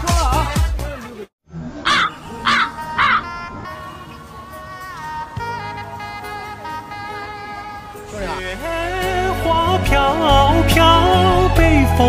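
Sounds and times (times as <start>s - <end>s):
crow cawing: 1.8s - 4.2s.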